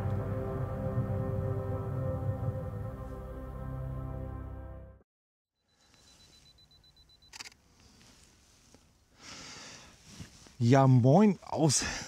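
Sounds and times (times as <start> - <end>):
camera shutter click: 7.3 - 7.6.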